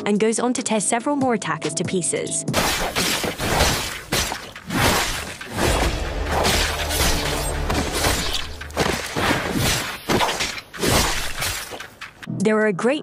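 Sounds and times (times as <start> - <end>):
metallic sword clashes and slashes: 2.5 - 12.2.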